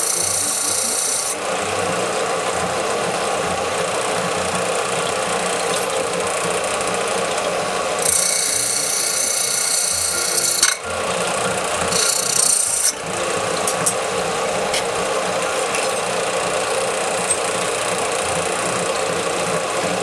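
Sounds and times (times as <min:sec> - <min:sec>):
belt sander grinding metal: 0:00.0 - 0:20.0.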